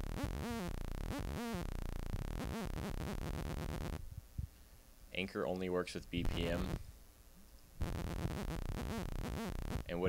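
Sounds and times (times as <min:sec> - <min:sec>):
synthesizer sawtooth note swooping: 0:00.0 - 0:04.0, 0:07.8 - 0:09.9.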